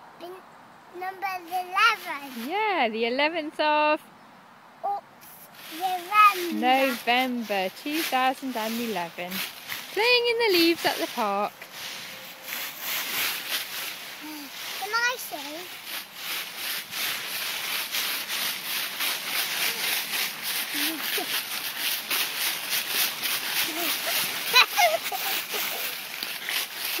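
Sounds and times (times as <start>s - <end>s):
footsteps crunching dry leaves: 5.5s - 27.0s.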